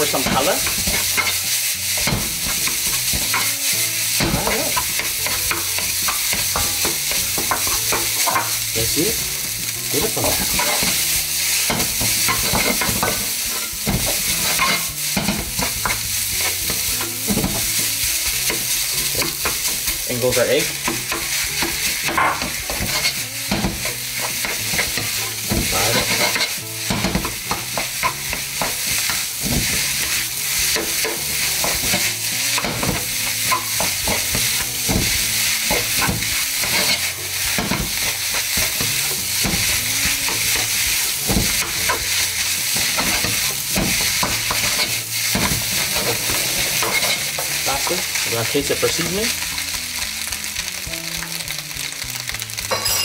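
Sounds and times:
spatula scraping and knocking pan: 0.0 - 50.1
rice sizzling in a pan: 0.0 - 53.0.

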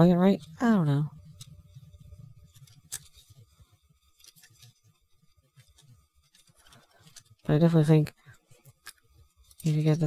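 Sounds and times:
plastic parts clicking and rubbing: 0.3 - 10.0.

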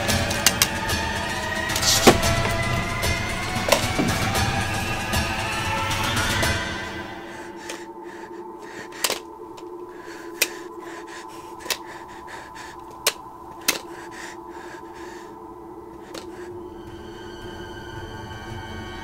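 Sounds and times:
horror score drone: 0.0 - 19.0.

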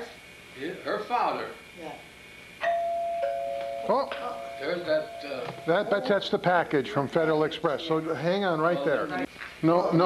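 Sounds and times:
two-note doorbell chime: 2.6 - 5.8.

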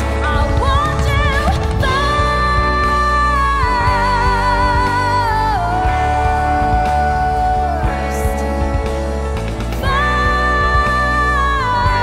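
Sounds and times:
pop worship band playing: 0.0 - 12.0.

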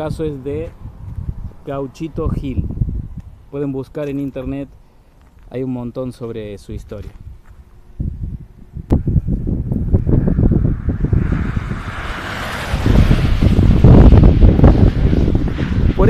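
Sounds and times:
wind buffeting microphone: 0.0 - 4.8, 6.7 - 16.0.

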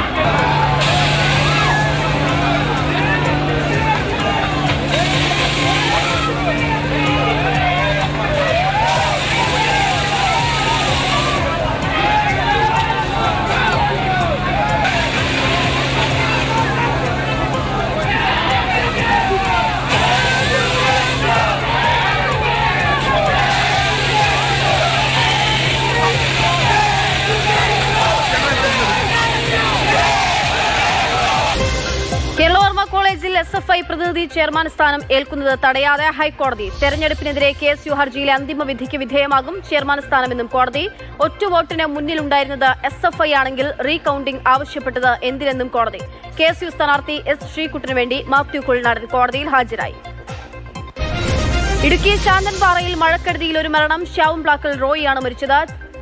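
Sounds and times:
protesters shouting: 0.0 - 32.0
crowd voices: 0.0 - 32.6
truck engine humming: 0.0 - 33.5
hissing water jet: 0.6 - 6.9, 7.9 - 11.5, 22.8 - 32.0.

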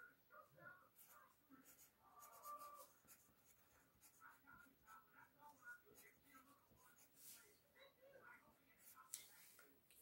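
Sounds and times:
pencil scratching on paper: 0.9 - 7.5.

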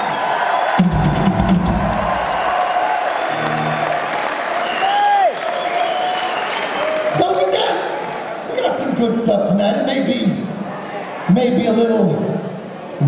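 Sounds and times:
crowd cheering: 0.0 - 9.2, 10.5 - 13.0
drum and bass hit: 0.8 - 2.4
pitched note sliding downward: 3.3 - 4.4.

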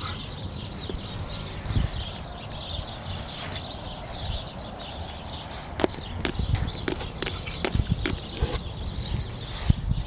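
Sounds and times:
beaks pecking taps and clicks: 5.8 - 8.6.

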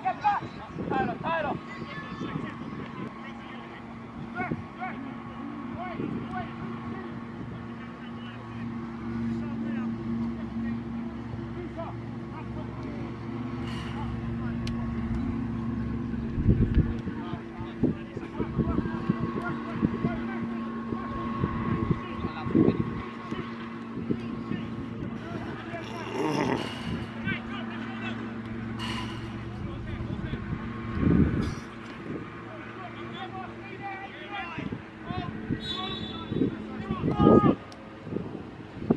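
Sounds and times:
wind buffeting microphone: 0.0 - 3.2, 14.8 - 25.8, 28.7 - 32.4, 34.5 - 38.9
motor hum: 1.3 - 38.9.

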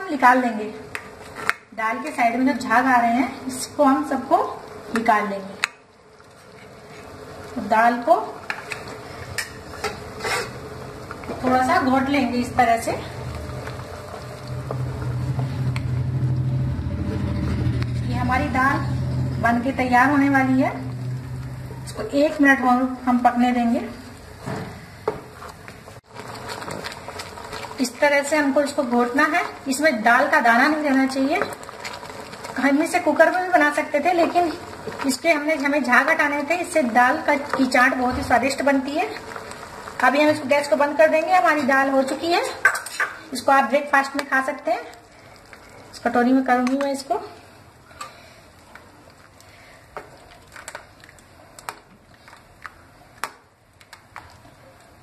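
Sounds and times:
spatula scraping and squelching: 8.5 - 10.7.

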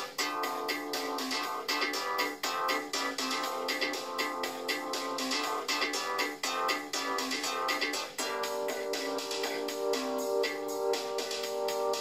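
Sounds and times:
synthesizer music: 0.0 - 12.0.

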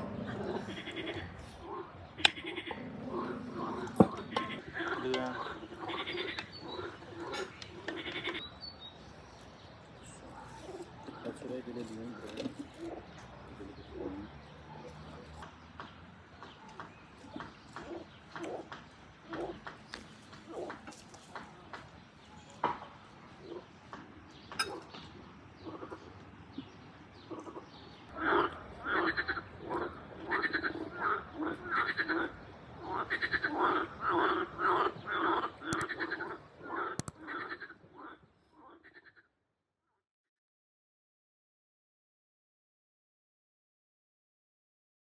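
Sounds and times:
faint calls: 0.0 - 8.6, 10.0 - 39.3
frogs croaking: 0.0 - 9.2, 10.0 - 39.4.

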